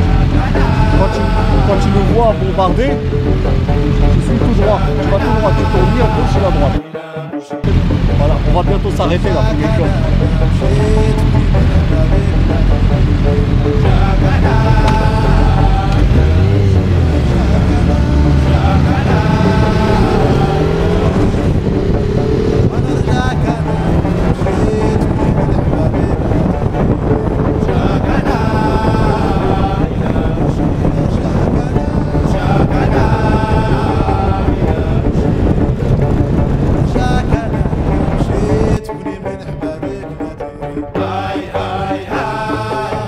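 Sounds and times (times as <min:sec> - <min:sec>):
motorcycle engine running: 0:00.0 - 0:06.8, 0:07.6 - 0:38.8
wind buffeting microphone: 0:07.7 - 0:43.0.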